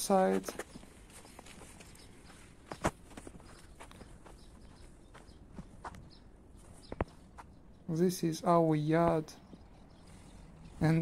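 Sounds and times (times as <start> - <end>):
footsteps walking: 0.2 - 7.7.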